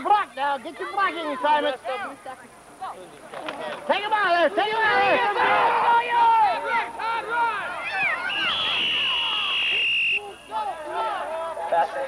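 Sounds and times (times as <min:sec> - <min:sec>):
people shouting: 0:04.2 - 0:12.0
referee's whistle blast: 0:07.9 - 0:10.6.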